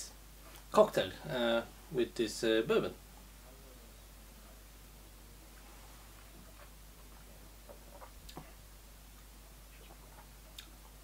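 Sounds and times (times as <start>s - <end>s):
mouth clicks and lip smacks: 7.7s - 8.6s, 9.2s - 11.0s.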